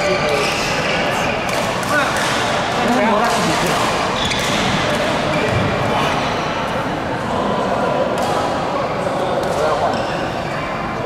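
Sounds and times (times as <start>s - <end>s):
rackets hitting shuttlecock: 1.4s - 2.6s, 3.3s - 5.1s.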